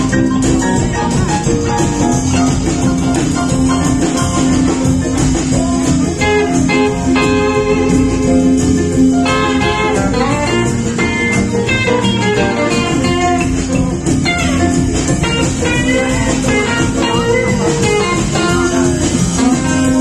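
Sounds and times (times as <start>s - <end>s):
bass and drums: 0.0s - 20.0s
lead electric guitar bending notes: 0.0s - 20.0s.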